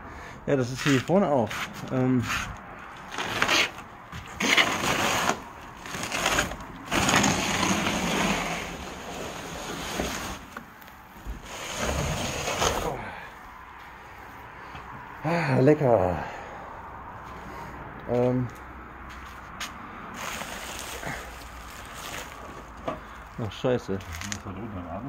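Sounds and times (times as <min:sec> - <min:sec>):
bubble wrap and cardboard rustling: 0:01.5 - 0:13.0, 0:20.2 - 0:24.5.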